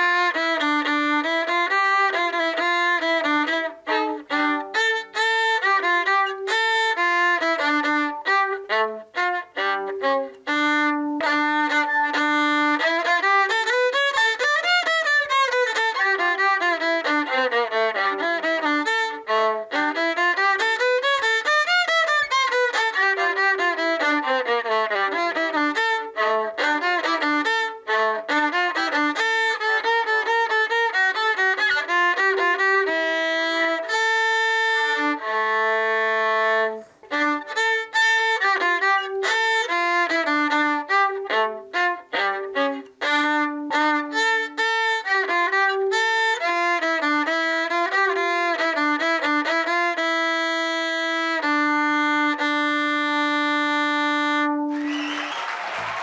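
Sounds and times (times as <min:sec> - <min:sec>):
viola playing: 0:00.0 - 0:56.0.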